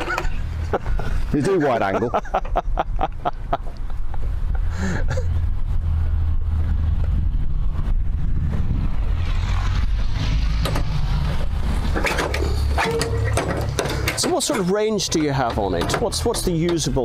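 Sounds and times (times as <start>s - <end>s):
wind buffeting microphone: 3.8s - 14.2s.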